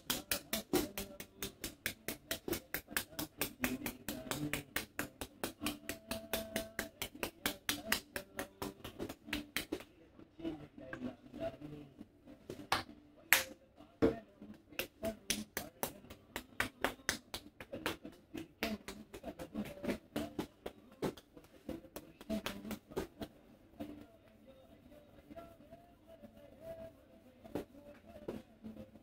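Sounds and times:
hands clapping on head: 0.0s - 10.0s, 12.5s - 23.4s.

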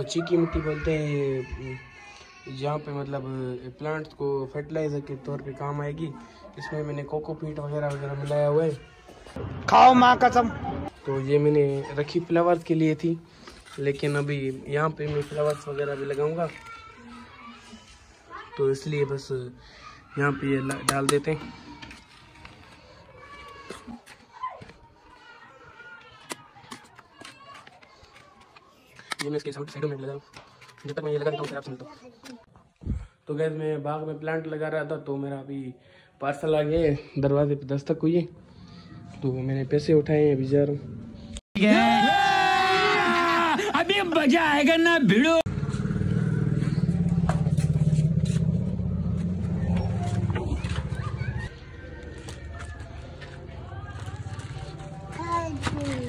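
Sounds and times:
motorcycle engine idling: 45.5s - 51.4s.

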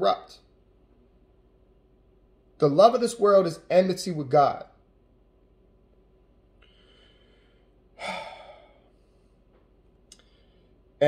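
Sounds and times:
faint breath: 6.6s - 10.9s
man sighing: 8.0s - 8.9s.

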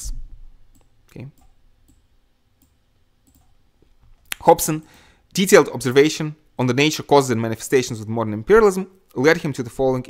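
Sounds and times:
computer mouse clicks: 0.7s - 2.0s, 2.6s - 3.6s.

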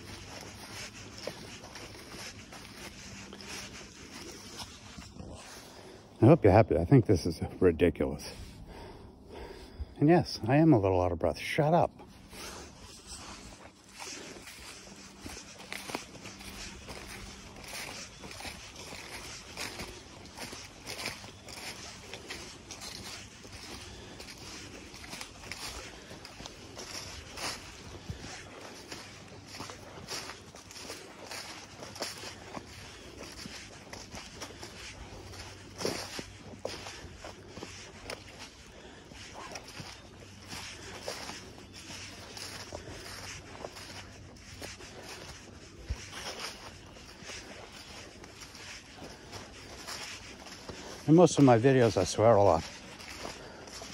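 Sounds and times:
footsteps on dry leaves: 0.0s - 9.8s, 10.4s - 53.9s.

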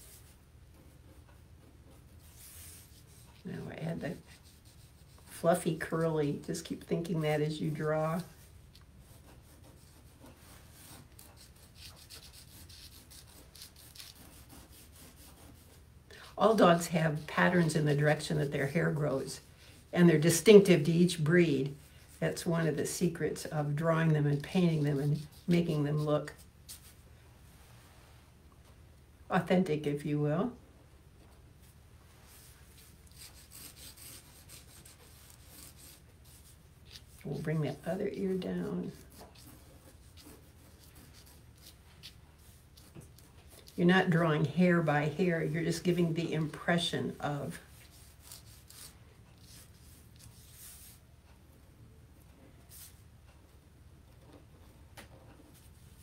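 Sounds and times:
felt-tip pen scratching on paper: 0.0s - 5.4s, 9.0s - 15.8s, 24.2s - 26.9s, 32.8s - 43.8s, 47.6s - 51.0s.

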